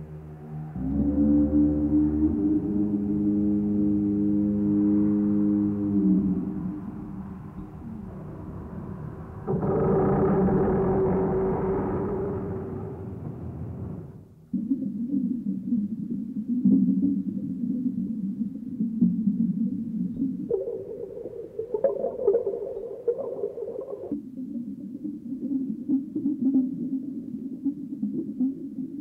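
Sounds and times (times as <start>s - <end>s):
electronic low droning tones: 0.0s - 14.4s.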